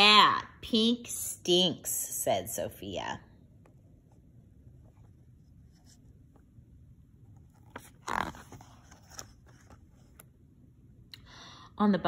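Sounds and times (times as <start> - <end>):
paper page turning: 7.4 - 10.3.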